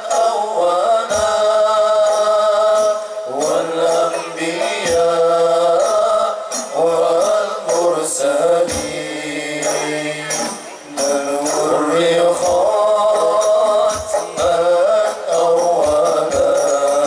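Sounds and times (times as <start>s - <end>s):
man singing into microphone: 0.0s - 17.0s.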